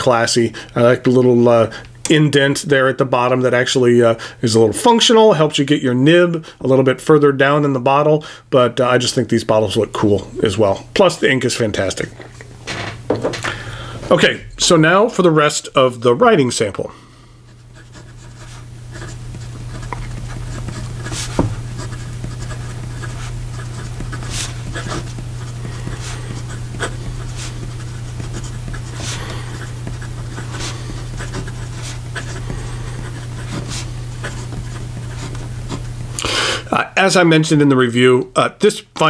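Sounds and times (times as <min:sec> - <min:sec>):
steady low hum: 0:00.0 - 0:39.0
pen nib scratching on paper: 0:17.5 - 0:36.1
pen nib ticks: 0:17.8 - 0:35.9.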